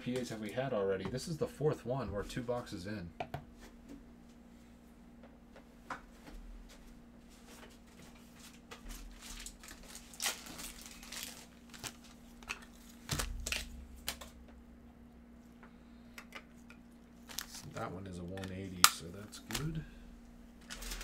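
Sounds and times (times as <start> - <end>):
plastic packaging crinkling: 8.8 - 14.4, 17.2 - 17.8, 20.6 - 21.0.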